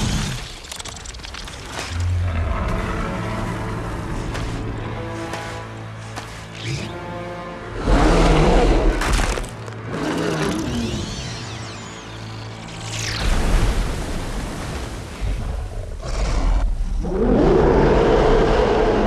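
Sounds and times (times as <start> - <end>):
film score music: 0.0 - 19.0.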